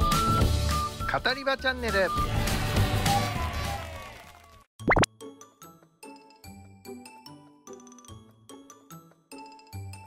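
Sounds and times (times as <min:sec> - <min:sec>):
light background music: 0:00.0 - 0:03.9, 0:04.8 - 0:10.0.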